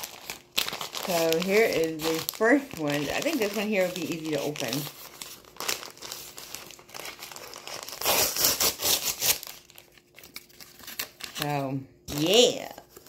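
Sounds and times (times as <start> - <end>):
paper mailer crinkling and tearing: 0.0 - 13.0.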